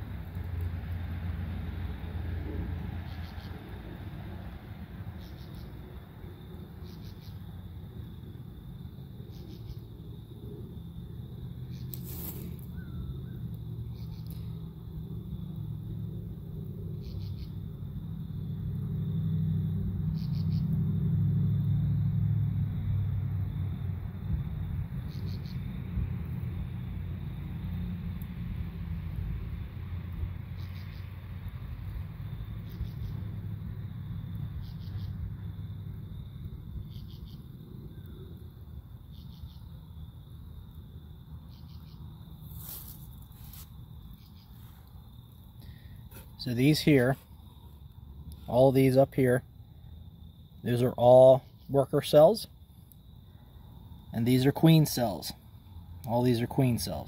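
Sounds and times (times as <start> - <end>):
faint high insect tone: 0.0 - 57.0
high insect chirps: 1.7 - 57.0.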